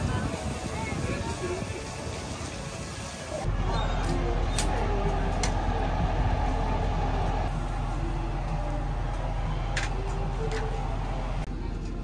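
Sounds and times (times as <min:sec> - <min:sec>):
low mechanical rumble: 0:03.5 - 0:12.0.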